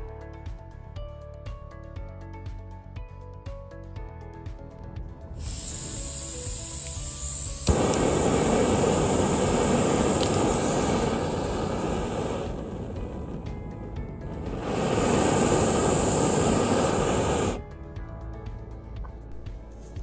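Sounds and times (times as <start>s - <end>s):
gas flame hissing: 5.3s - 17.6s
lighter click: 5.4s - 13.0s.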